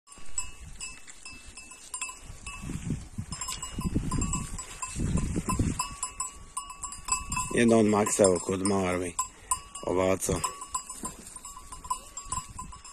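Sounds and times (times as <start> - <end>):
sheep bells clinking: 0.1 - 12.9.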